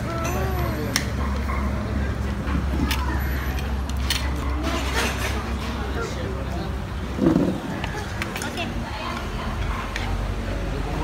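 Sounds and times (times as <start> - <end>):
faint voices: 0.0 - 11.0
road traffic rumble: 0.0 - 11.0.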